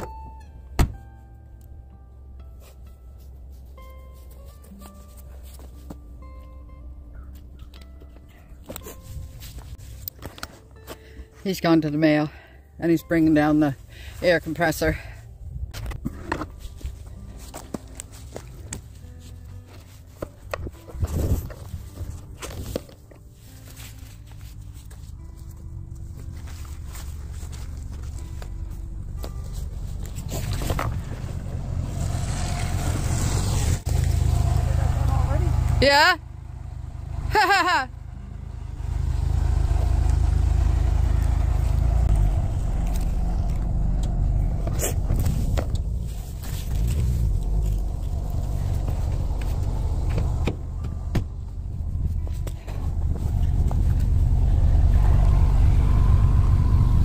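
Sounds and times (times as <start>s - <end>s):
truck engine rumble: 0.0s - 57.0s.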